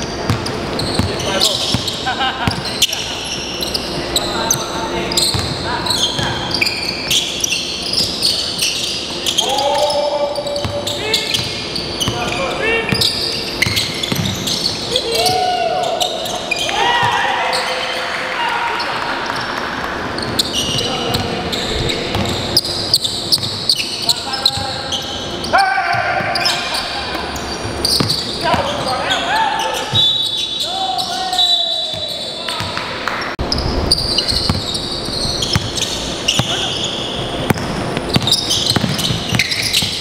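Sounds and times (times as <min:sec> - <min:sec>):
sneakers squeaking on floor: 0:00.0 - 0:18.0, 0:18.8 - 0:40.0
players calling out: 0:00.2 - 0:33.2
basketball bouncing on hardwood: 0:13.6 - 0:14.4, 0:37.5 - 0:40.0.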